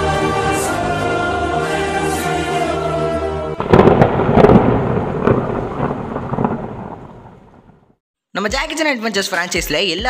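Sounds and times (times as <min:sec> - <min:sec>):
sharp cracks: 0:03.6 - 0:08.0
thunder-like rumble: 0:03.6 - 0:08.0.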